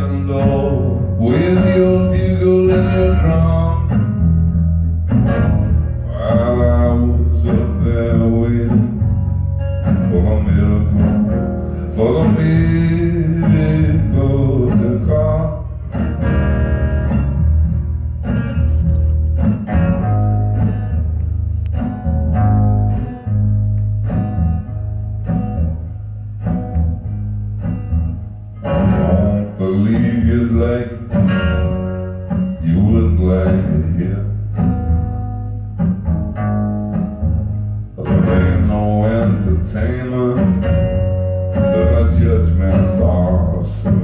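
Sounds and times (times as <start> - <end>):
man singing: 0.0 - 4.1, 6.0 - 9.2, 9.8 - 15.8, 28.7 - 31.7, 32.6 - 34.4, 38.0 - 44.0
acoustic guitar strumming: 0.0 - 44.0.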